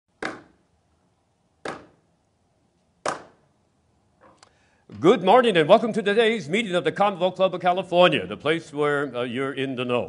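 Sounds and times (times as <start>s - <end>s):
wooden gavel rapping on block: 0.1s - 0.6s, 1.6s - 2.0s.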